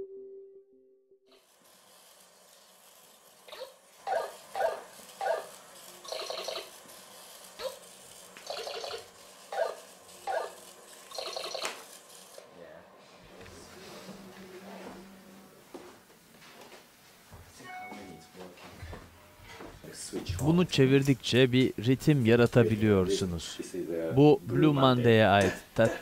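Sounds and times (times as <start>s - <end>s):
marker squeaking on paper: 7.4s - 11.9s.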